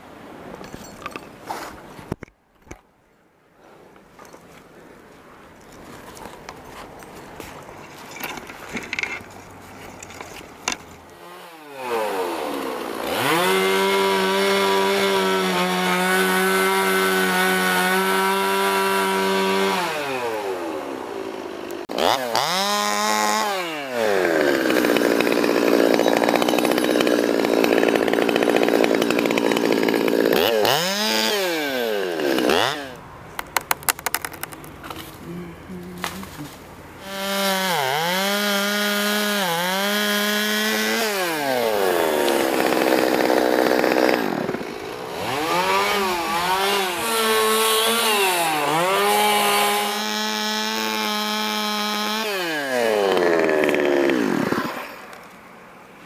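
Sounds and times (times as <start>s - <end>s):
chainsaw cutting wood: 8.2s - 35.2s, 35.9s - 55.3s.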